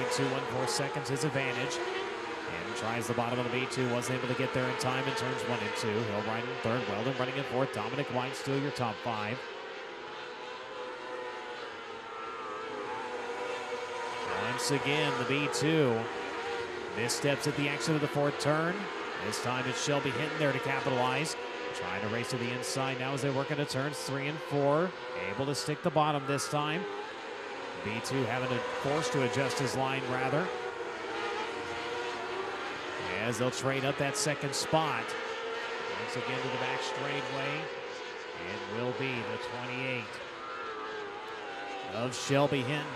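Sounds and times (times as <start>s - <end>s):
racing car engines at high revs: 0.0s - 42.9s.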